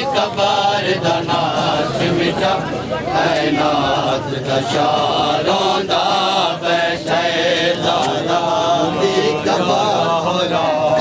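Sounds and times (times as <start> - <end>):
man chanting a lament: 0.0 - 11.0.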